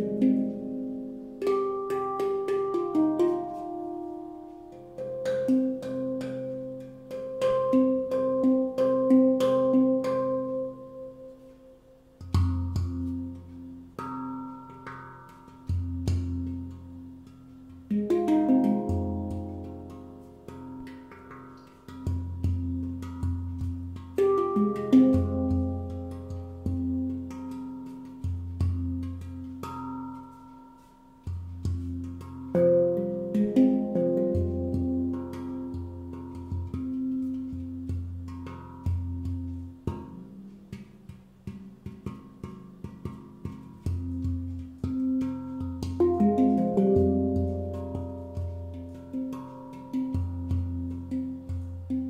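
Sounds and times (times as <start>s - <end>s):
handpan notes ringing: 0.0s - 52.0s.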